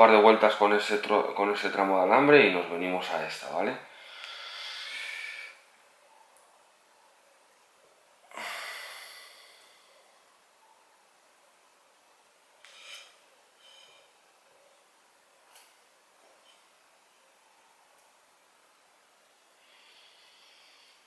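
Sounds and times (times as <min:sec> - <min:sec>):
person breathing out through nose: 0:03.9 - 0:05.6, 0:08.3 - 0:10.1.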